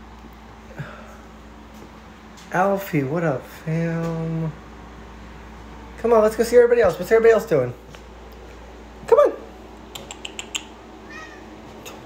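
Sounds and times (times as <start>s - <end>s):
cat meowing: 11.0s - 11.5s.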